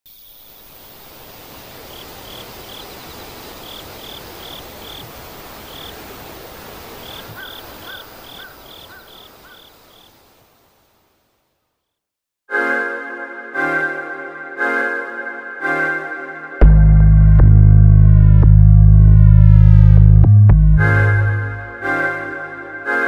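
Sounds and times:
low short notes: 0:16.6 - 0:22.8.

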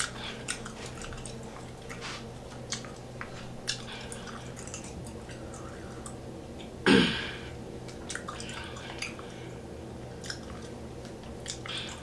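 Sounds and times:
gum chewing mouth sounds: 0:00.0 - 0:06.7, 0:07.8 - 0:12.0.

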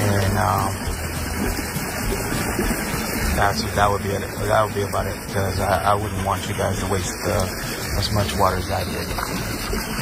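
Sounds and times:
pool pump humming: 0:00.0 - 0:10.0
water rushing from jet: 0:00.0 - 0:10.0.

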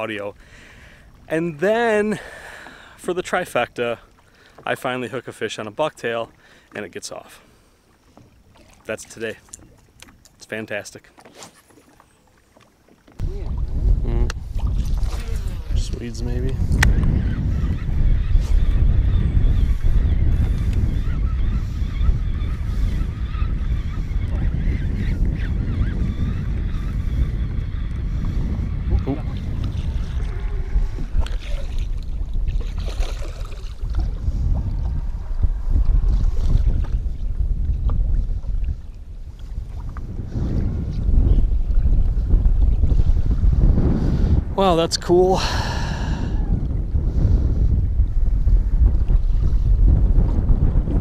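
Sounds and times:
water lapping against boat hull: 0:00.0 - 0:44.4
wind buffeting microphone: 0:13.1 - 0:51.0.

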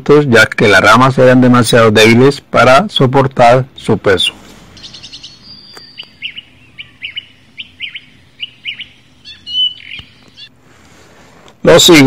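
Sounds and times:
bird chirping: 0:04.2 - 0:10.6
thin whistle: 0:04.8 - 0:10.5.

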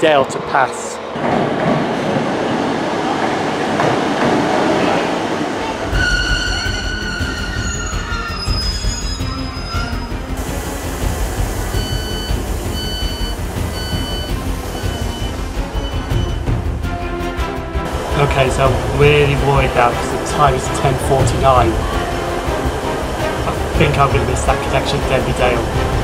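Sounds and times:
train rumble inside carriage: 0:00.0 - 0:17.0, 0:17.8 - 0:26.0
diesel train arriving: 0:00.0 - 0:26.0
wavering squeal: 0:05.9 - 0:10.3
door warning beeps: 0:11.7 - 0:16.5.

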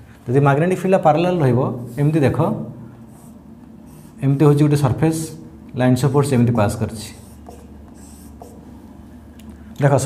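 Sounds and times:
man talking: 0:00.3 - 0:02.8, 0:04.2 - 0:07.3, 0:09.8 - 0:10.0
marker scratching on whiteboard: 0:03.1 - 0:04.2, 0:07.0 - 0:08.7.

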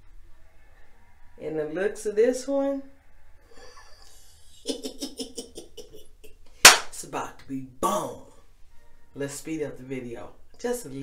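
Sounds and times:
woman laughing: 0:03.6 - 0:06.3.

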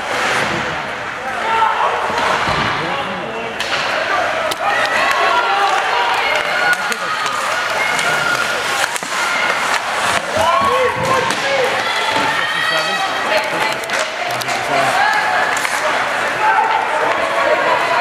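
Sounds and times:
hockey sticks and puck clacking: 0:03.6 - 0:18.0
indistinct shouting voices: 0:03.9 - 0:18.0.

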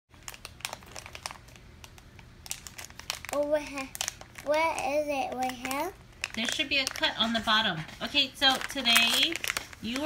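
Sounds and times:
toy packet crinkling: 0:00.2 - 0:10.0.

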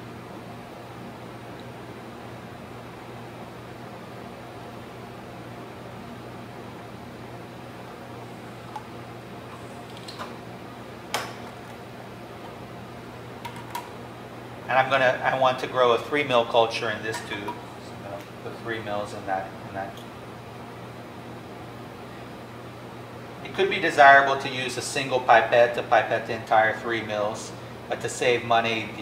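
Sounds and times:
ventilation fan hum: 0:00.0 - 0:29.0.

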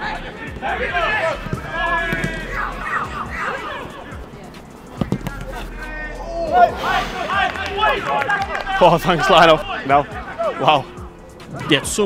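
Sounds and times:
players shouting: 0:00.0 - 0:12.0
ball kicked thud: 0:01.4 - 0:02.5, 0:05.0 - 0:05.4.

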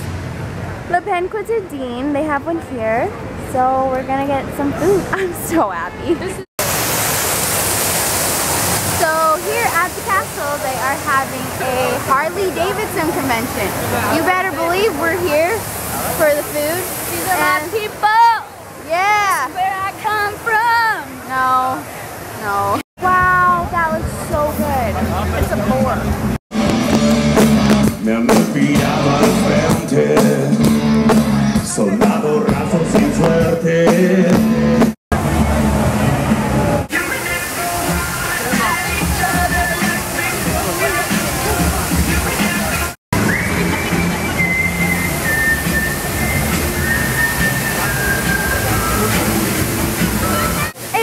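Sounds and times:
fountain water jets rushing: 0:06.6 - 0:26.4, 0:35.2 - 0:51.0
crowd voices: 0:09.0 - 0:34.4, 0:35.1 - 0:51.0.

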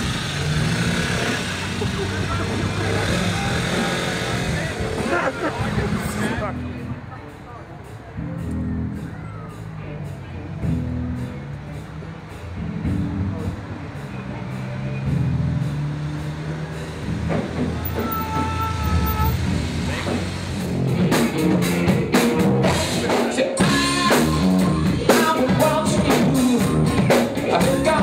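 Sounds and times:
bass guitar: 0:00.0 - 0:07.4, 0:08.1 - 0:28.0
drums keeping a beat: 0:00.0 - 0:28.0
rock band playing loudly: 0:00.0 - 0:28.0.

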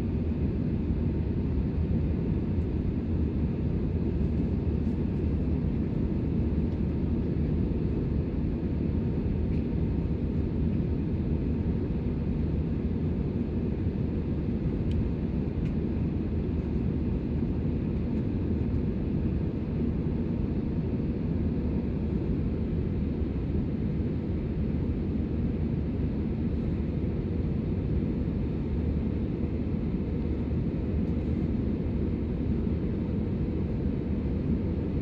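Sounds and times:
airliner cabin engine noise: 0:00.0 - 0:35.0.

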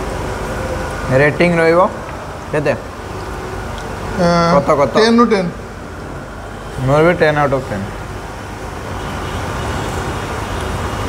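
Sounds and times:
dining hall rushing hum: 0:00.0 - 0:11.0.

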